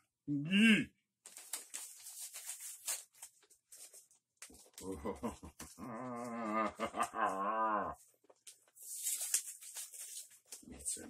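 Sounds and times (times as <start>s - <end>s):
man's deep growly laugh: 4.8s - 8.0s.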